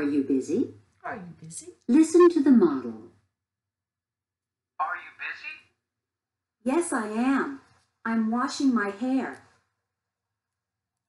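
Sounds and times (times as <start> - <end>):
recorded voice through small speaker: 0.0 - 3.3, 4.8 - 6.0, 6.6 - 9.6.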